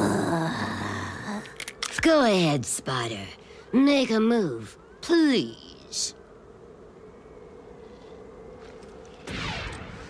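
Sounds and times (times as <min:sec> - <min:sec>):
low steady hum: 0:00.0 - 0:10.0
blaster shots with sweeping zaps: 0:09.2 - 0:10.0.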